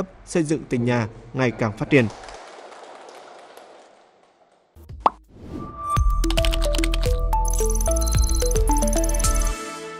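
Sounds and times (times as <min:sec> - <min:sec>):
music with steady beat: 0:06.0 - 0:09.8.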